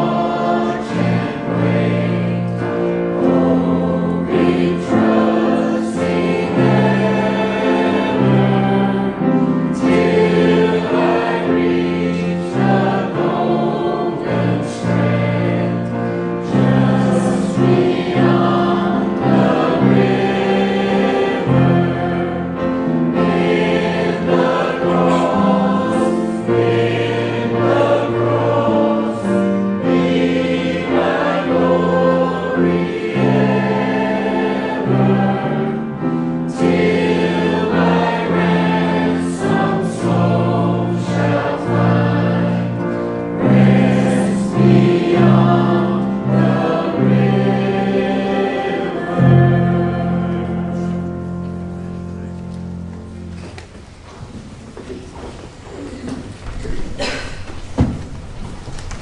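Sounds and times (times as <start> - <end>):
choir singing a hymn: 0.0 - 53.7, 55.8 - 58.1
held low accompanying notes: 0.0 - 59.0.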